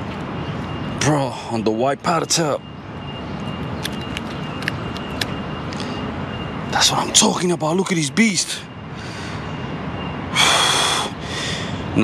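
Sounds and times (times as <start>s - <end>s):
man breathing heavily: 8.9s - 9.6s, 10.3s - 12.0s.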